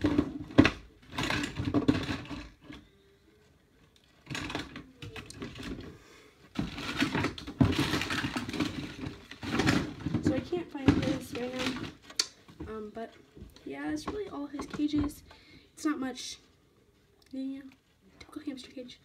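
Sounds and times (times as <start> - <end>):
plastic tubes clicking and knocking: 0.0 - 2.9, 3.8 - 5.9, 6.5 - 15.4
bedding rustling: 5.4 - 16.3.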